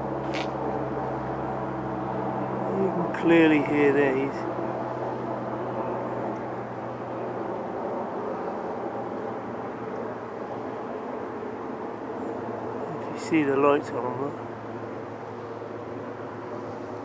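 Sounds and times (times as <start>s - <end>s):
distant engine drone: 0.0s - 17.0s.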